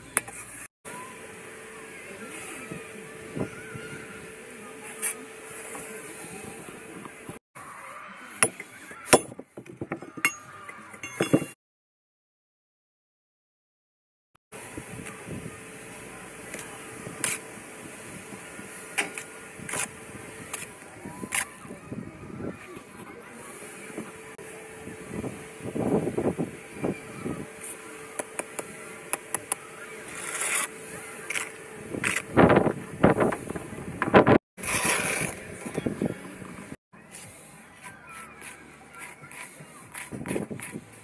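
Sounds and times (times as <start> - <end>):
trowel clinking on brick: 8.4 - 11.6
trowel scraping mortar: 28.2 - 32.4, 34.6 - 35.9, 37.1 - 41.0.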